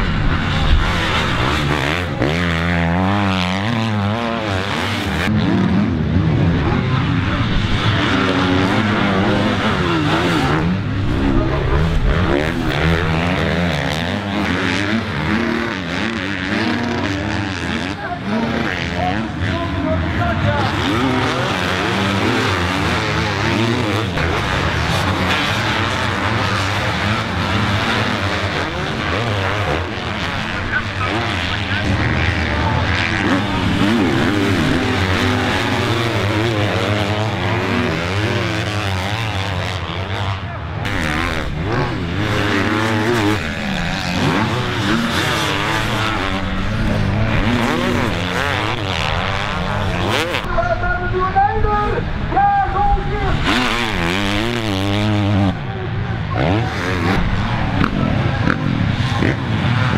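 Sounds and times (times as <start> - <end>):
motocross bike engines revving: 0.0 - 59.9.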